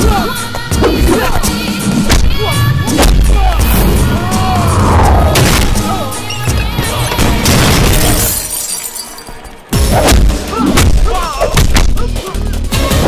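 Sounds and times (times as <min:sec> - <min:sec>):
action film score: 0:00.0 - 0:08.2
loud crash: 0:03.1 - 0:08.5
punch and impact effects: 0:05.2 - 0:05.9.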